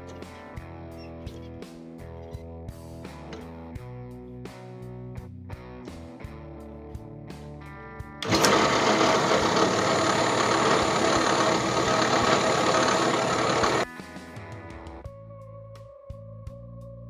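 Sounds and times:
file scraping spinning bolt: 8.2s - 13.8s.

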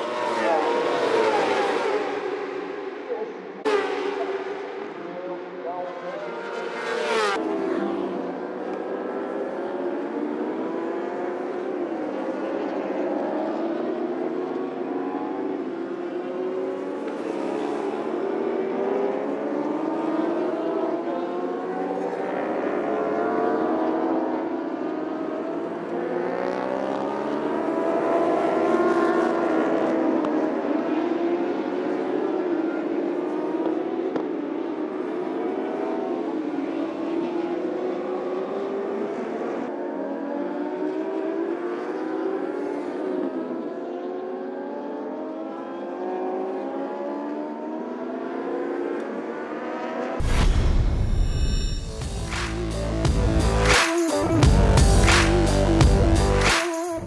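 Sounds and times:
racing motorcycle engines revving: 0.0s - 37.2s.

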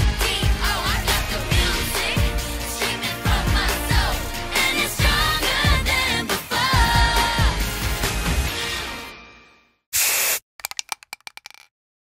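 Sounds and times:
aerosol can spraying: 10.0s - 11.6s
rattling clicks of paint can: 10.6s - 11.7s.

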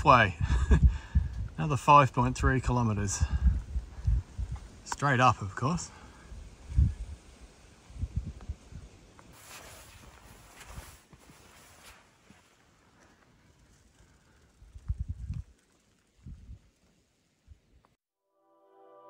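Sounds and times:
wind buffeting microphone: 0.0s - 4.9s, 6.2s - 9.1s, 14.5s - 16.7s.

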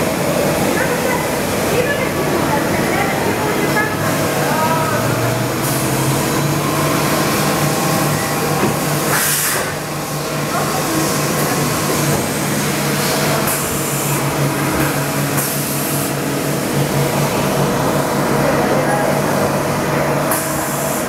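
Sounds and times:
coolant spray hiss: 9.0s - 17.4s, 20.3s - 21.0s.

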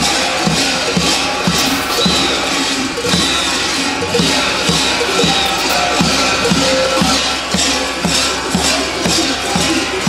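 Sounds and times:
drum beating steadily: 0.0s - 10.0s
large bells clanging: 0.0s - 10.0s.

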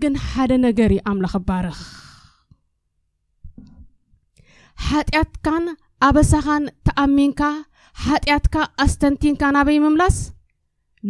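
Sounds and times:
woman speaking: 0.0s - 2.0s, 4.8s - 10.4s
woman breathing into microphone: 4.4s - 4.8s.

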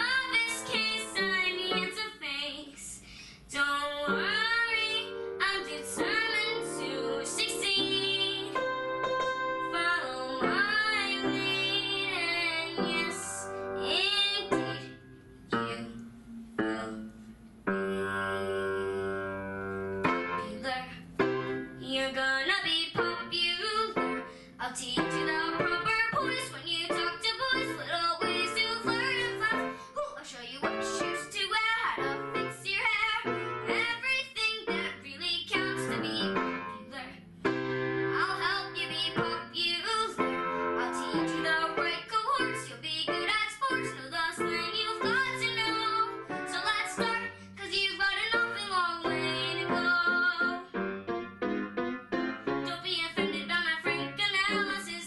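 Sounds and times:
girl singing: 0.0s - 37.3s, 38.0s - 50.8s, 52.6s - 55.0s
upright piano: 3.9s - 55.0s.

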